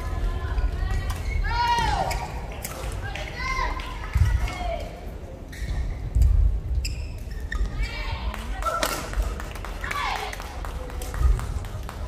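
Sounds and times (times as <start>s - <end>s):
shoes squeaking on court: 5.5s - 8.1s.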